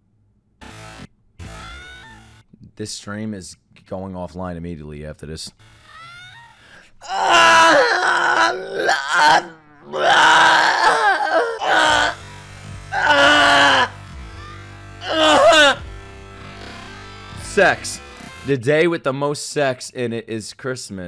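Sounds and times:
man groaning loudly: 7.0s - 12.2s, 12.9s - 13.9s, 15.0s - 15.8s
anime theme music: 11.6s - 18.6s.

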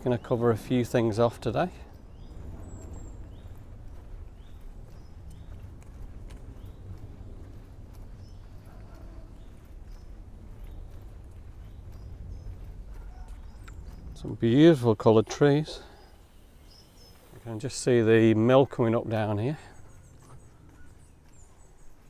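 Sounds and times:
low steady rumble: 0.0s - 18.2s
footsteps on tarmac: 0.0s - 22.0s
faint bird chirps: 15.1s - 17.6s, 19.4s - 22.0s.

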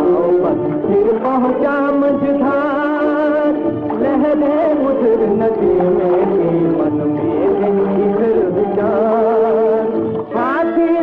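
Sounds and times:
instrumental film music melody: 0.0s - 11.0s.

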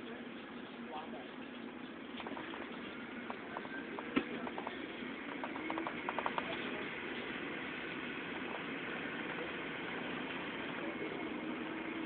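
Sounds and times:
faint steady hum: 0.0s - 12.0s
moving vehicle interior noise: 2.1s - 12.0s.

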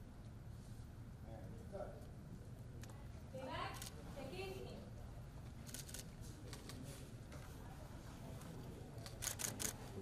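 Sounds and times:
low room hum: 0.0s - 10.0s
camera shutter clicking: 9.2s - 9.8s.

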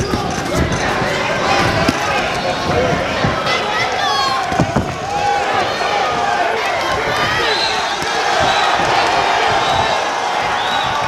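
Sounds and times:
people shouting: 0.0s - 11.0s.

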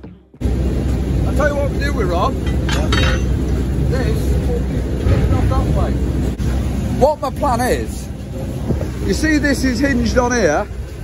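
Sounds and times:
heavy machinery rumbling: 0.0s - 11.0s
voices: 0.9s - 11.0s.

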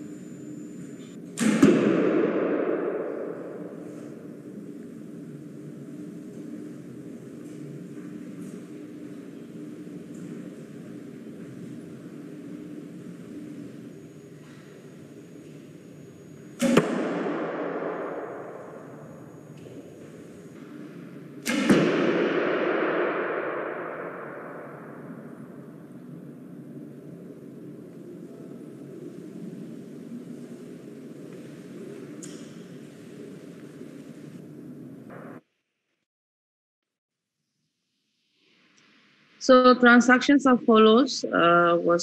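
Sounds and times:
arrows hitting with ringing decay: 1.4s - 4.4s, 16.6s - 19.9s, 21.4s - 25.7s.

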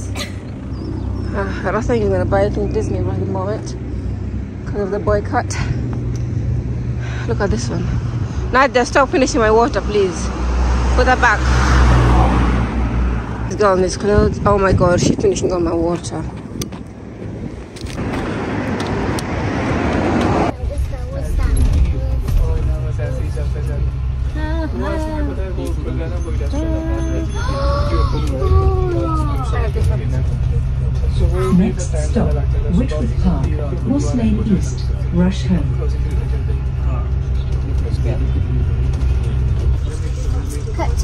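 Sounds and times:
voices: 0.0s - 6.4s, 7.0s - 16.5s, 18.8s - 41.0s
bus rumble from inside: 0.0s - 41.0s
road traffic noise: 0.0s - 41.0s.

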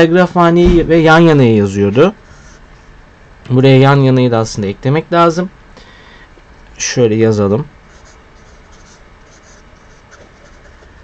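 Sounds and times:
highlighter scratching on paper: 2.2s - 3.0s, 7.9s - 11.0s.

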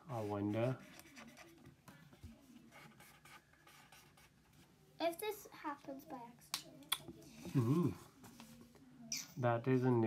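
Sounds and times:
pencil scratching on paper: 0.1s - 1.7s, 2.6s - 4.7s.

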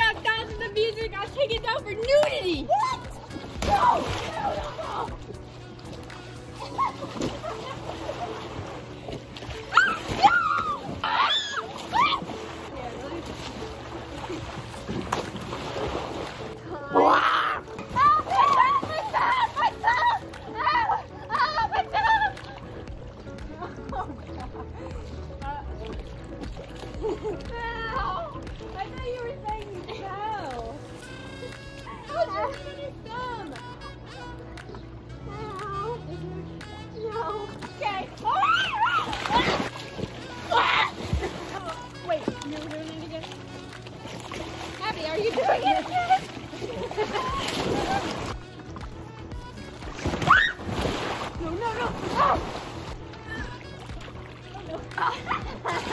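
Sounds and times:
pool water splashing: 0.0s - 55.9s
water lapping in pool: 0.0s - 55.9s
girl shrieking with laughter: 9.7s - 12.2s, 38.2s - 39.6s, 50.2s - 50.7s.

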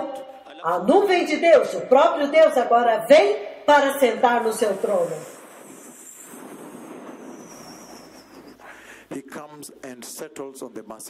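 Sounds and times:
faint high-pitched whine: 3.4s - 10.1s
hall background hiss: 4.3s - 10.0s.

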